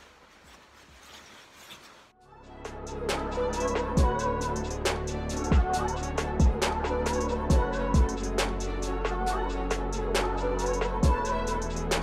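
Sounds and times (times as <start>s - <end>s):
rustling of paint suit: 0.0s - 2.2s.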